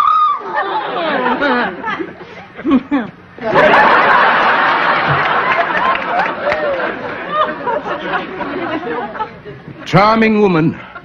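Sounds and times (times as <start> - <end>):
audience laughter: 0.4 - 9.9
individual laughs and chuckles: 1.4 - 3.3.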